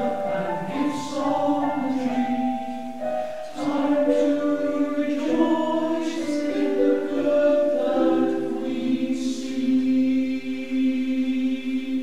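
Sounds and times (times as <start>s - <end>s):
male voice choir singing: 0.0s - 12.0s.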